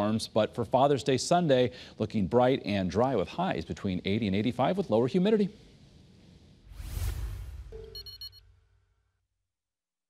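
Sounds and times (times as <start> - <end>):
electronic chime tones: 7.7 - 8.4.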